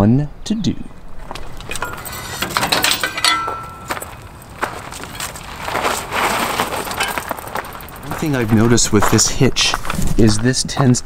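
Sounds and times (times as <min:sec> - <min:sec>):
footsteps on gravel: 0:01.2 - 0:11.0
bike rack metal rattles: 0:01.6 - 0:08.2.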